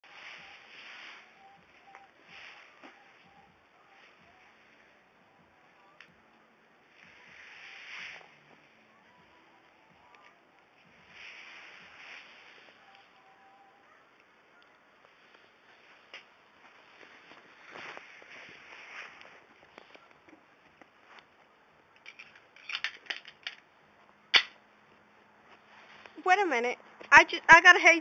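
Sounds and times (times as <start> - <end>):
faint background hiss: 0.0 - 28.0.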